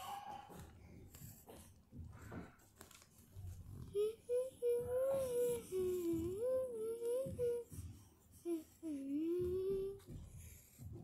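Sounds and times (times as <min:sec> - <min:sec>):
girl humming: 0:03.9 - 0:10.2.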